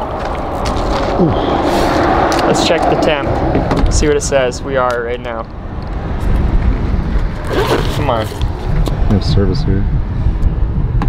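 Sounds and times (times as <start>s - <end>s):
steady low rumble: 0.0s - 11.0s
rustling scrape: 7.4s - 8.4s.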